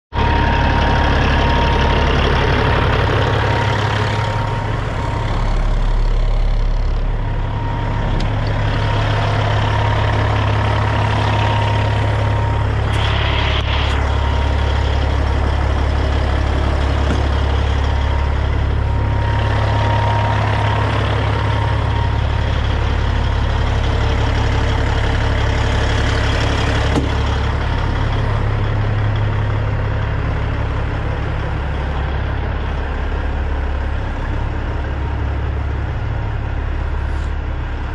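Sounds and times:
diesel truck engine idling: 0.1 - 37.9.

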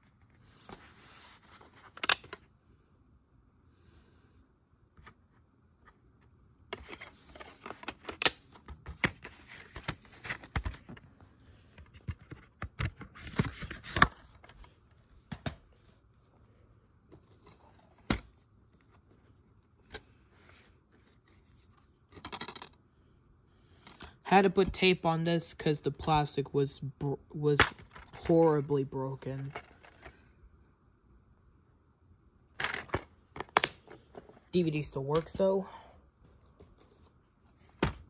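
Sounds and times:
plastic cases clicking and rattling: 22.1 - 22.8, 32.6 - 34.4.

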